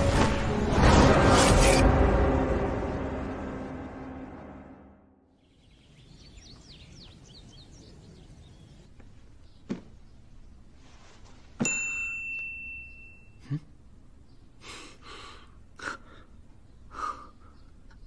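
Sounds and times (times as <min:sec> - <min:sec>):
clear ding: 0:11.6 - 0:13.4.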